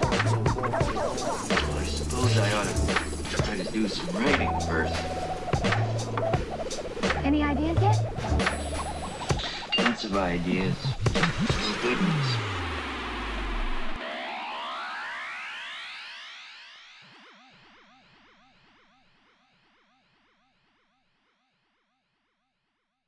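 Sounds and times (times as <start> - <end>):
rising synth sweeps: 0.0 - 19.3
low synth tone sliding down: 10.4 - 18.4.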